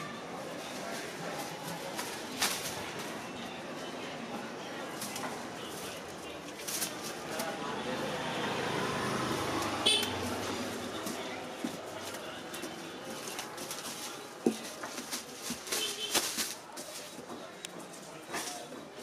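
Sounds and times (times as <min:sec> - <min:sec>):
general market noise: 0:00.0 - 0:19.0
indistinct voices: 0:00.0 - 0:19.0.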